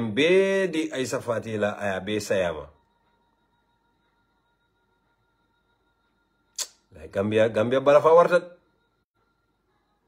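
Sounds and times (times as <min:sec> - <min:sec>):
man speaking: 0:00.0 - 0:02.8, 0:06.6 - 0:08.6
faint steady whine: 0:00.0 - 0:10.0.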